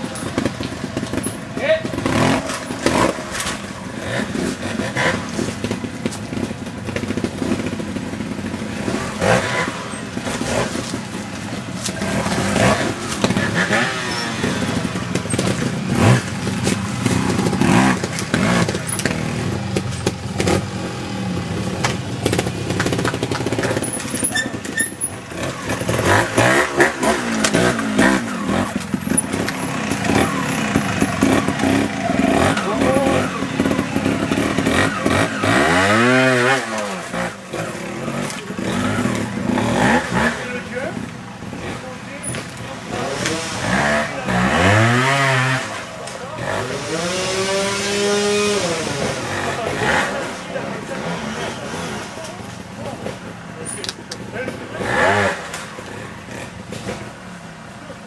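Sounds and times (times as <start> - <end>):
motorcycle engine revving: 0.0 - 58.0
people's voices: 9.6 - 58.0.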